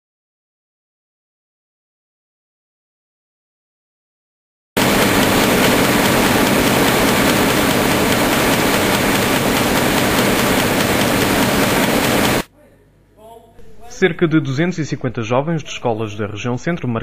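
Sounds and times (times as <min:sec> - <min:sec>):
loud steady rushing noise: 0:04.8 - 0:12.5.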